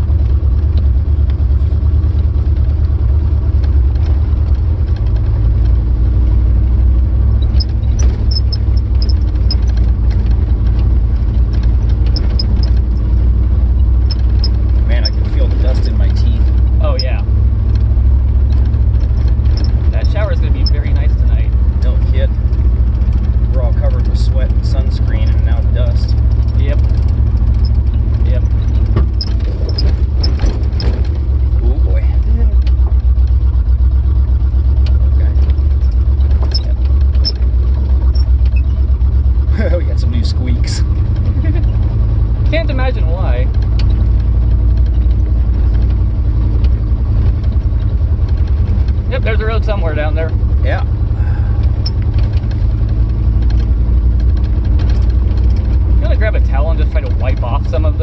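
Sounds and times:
car driving on rough dirt road: 0.0s - 58.0s
short rattles: 0.2s - 58.0s.

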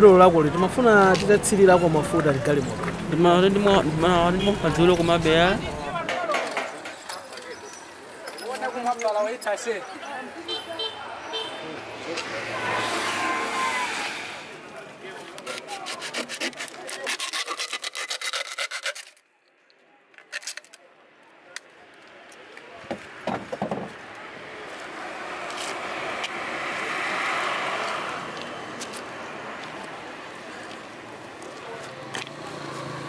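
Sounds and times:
motor vehicle passing: 0.0s - 6.1s, 11.6s - 15.0s, 24.2s - 33.0s
car driving past: 11.6s - 14.8s.

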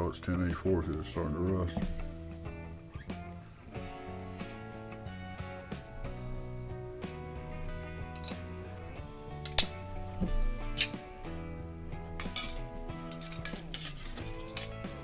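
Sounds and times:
acoustic guitar music: 0.0s - 15.0s
metal blades clinking and scraping: 5.8s - 15.0s.

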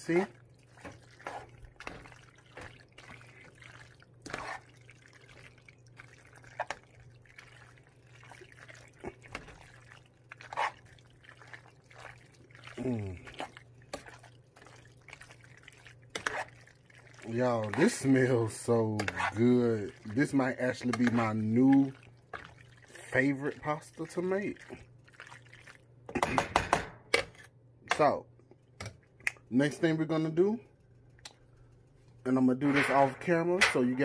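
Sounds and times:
spoon stirring thick pasta: 0.0s - 26.3s.

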